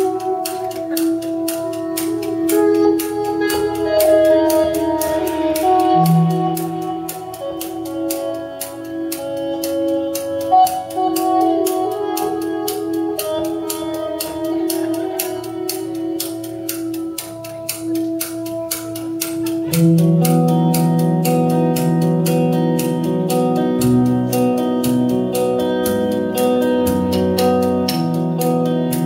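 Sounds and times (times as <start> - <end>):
drum kit beat: 0.0 - 29.0
electric guitar notes: 0.0 - 29.0
keyboard notes: 0.0 - 29.0.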